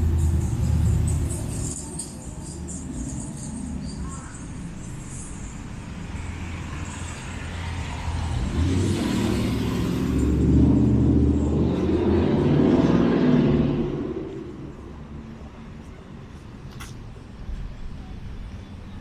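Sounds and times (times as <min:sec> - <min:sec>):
vehicle driving past: 0:04.9 - 0:15.3.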